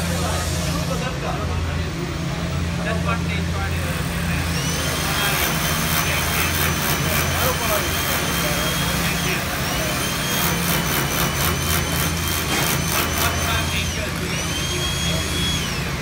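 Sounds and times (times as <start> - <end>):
power drill motor whine: 4.1 - 16.0.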